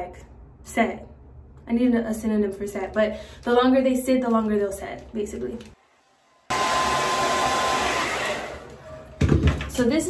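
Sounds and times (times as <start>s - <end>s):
hair dryer blowing air: 5.8s - 9.0s.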